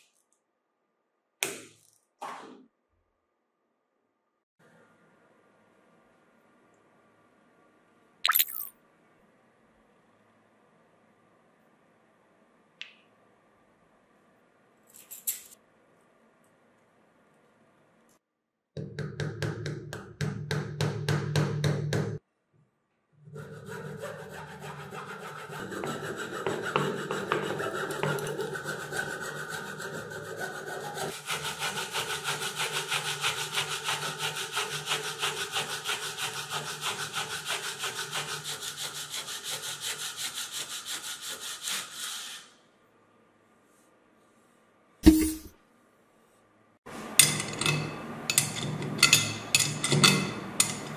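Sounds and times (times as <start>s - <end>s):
hand saw cutting wood: 23.3s - 42.5s
sandpaper rubbing wood: 23.6s - 42.6s.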